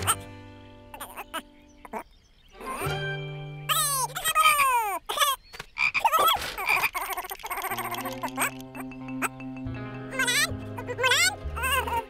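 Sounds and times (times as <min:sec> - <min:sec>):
light background music: 0:00.0 - 0:01.9, 0:02.6 - 0:04.3, 0:07.9 - 0:12.0
wavering calls: 0:00.9 - 0:12.0.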